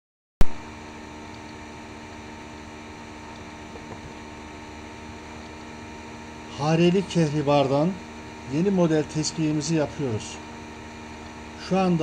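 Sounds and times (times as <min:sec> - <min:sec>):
lathe motor hum: 0:00.7 - 0:12.0.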